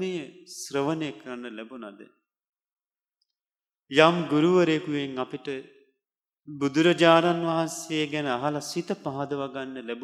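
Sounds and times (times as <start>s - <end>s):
man speaking: 0.0s - 2.2s, 3.9s - 5.7s.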